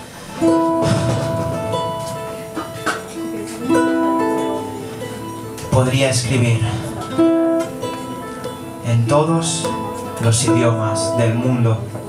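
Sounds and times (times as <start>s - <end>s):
ukulele picking: 0.0s - 12.0s.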